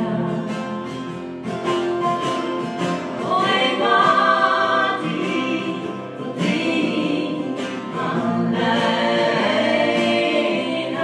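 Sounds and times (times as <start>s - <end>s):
acoustic guitars: 0.0s - 11.0s
woman singing: 3.2s - 11.0s.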